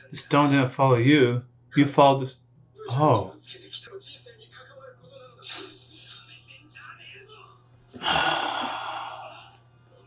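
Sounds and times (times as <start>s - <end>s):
man sighing: 8.0s - 9.4s.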